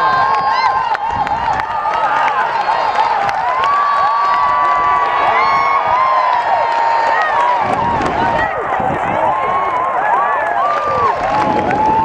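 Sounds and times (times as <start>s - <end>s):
clapping: 0.0s - 8.5s, 9.5s - 12.0s
crowd cheering and yelling: 0.0s - 12.0s.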